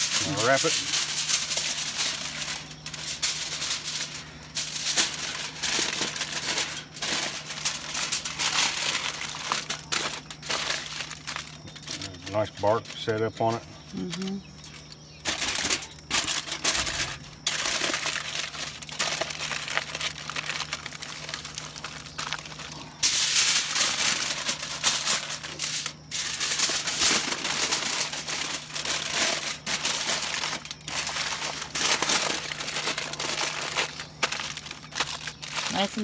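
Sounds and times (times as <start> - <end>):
aluminum foil crinkling: 0.0 - 36.0.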